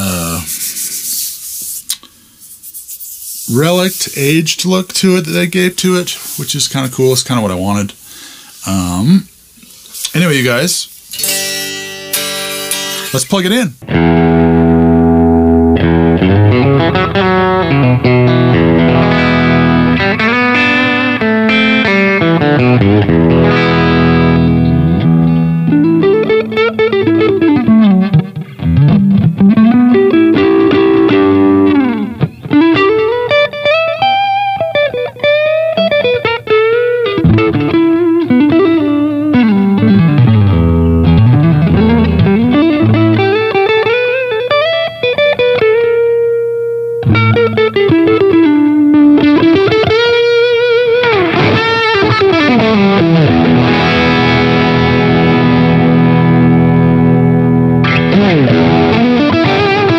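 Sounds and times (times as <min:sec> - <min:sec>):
electric guitar playing: 0:11.0 - 0:59.9.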